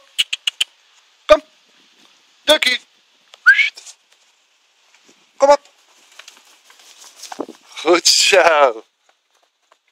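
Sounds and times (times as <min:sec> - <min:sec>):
short rising whistle: 0:03.4 - 0:03.7.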